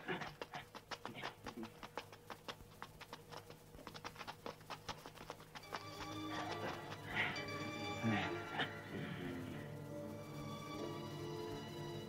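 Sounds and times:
sustained music notes: 5.6 - 12.0.

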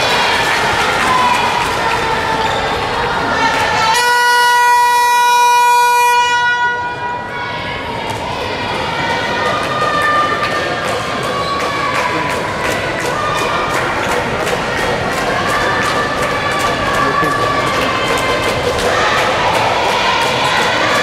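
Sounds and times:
crowd voices: 0.0 - 21.0
buzzer steady tone: 3.9 - 6.8
rhythmic clapping: 8.1 - 21.0.

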